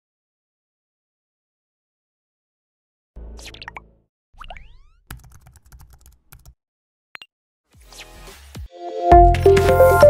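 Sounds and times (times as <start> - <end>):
keyboard typing clicks: 5.1 - 6.6
swept sounds with sliding pitch: 8.9 - 10.0.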